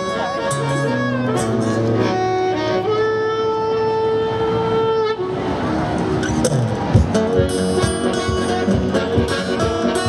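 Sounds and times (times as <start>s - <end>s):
harmonica holding long note: 0.0s - 5.6s, 7.2s - 10.0s.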